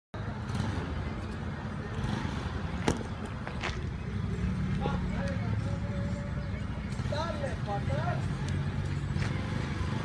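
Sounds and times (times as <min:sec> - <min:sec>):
faint distant voices: 0:00.2 - 0:10.0
vehicle engines rumbling: 0:00.2 - 0:10.0.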